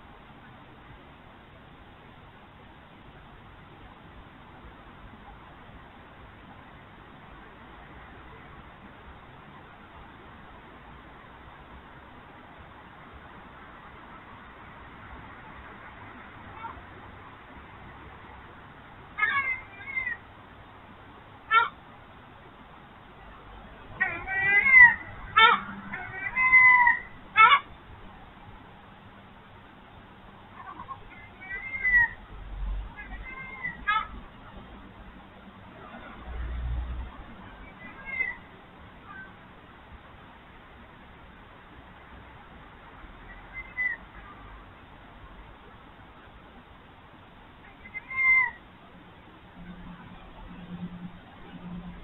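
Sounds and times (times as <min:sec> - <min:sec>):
fox whining call: 0:24.0 - 0:27.7, 0:30.6 - 0:32.2, 0:43.3 - 0:44.3.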